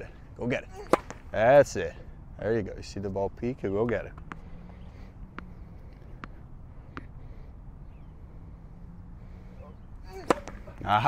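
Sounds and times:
racket striking ball: 0.8s - 1.3s, 3.9s - 4.4s, 5.3s - 7.2s, 10.1s - 11.0s
tennis ball bouncing on court: 0.8s - 1.3s, 3.8s - 4.5s, 5.3s - 7.2s, 10.1s - 10.9s.

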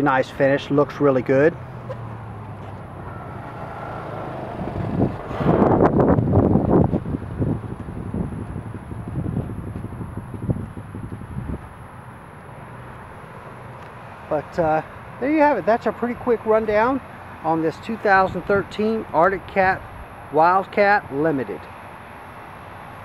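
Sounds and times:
rush of noise: 1.8s - 11.6s
engine idling with low hum: 4.6s - 23.0s.

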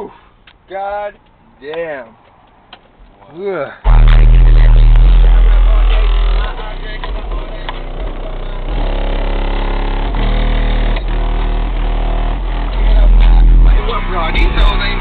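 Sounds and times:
loud car stereo song with deep bass: 3.8s - 15.0s.

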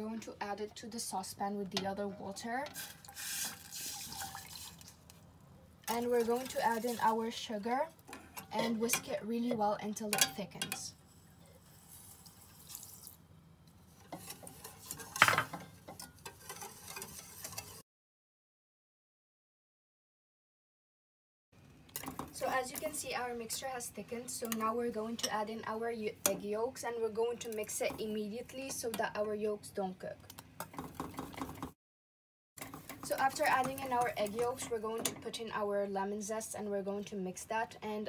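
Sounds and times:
sugar poured with soft hiss: 2.8s - 5.0s, 11.7s - 13.2s
whisk ticking against a metal pan: 32.6s - 35.3s.

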